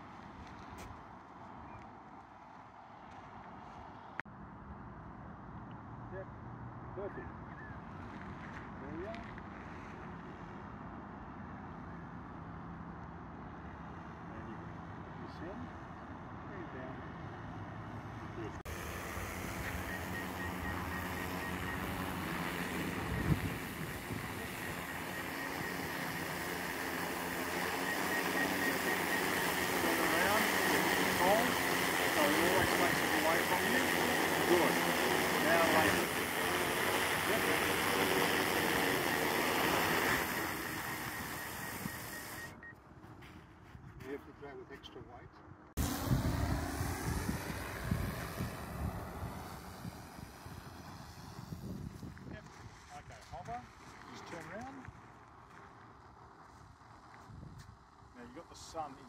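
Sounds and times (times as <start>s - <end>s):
drone motors and propellers hum: 17.4s - 42.8s, 45.8s - 59.0s.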